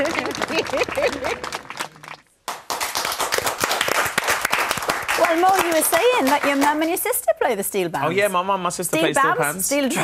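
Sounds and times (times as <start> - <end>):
audience applauding: 0.0 - 7.0.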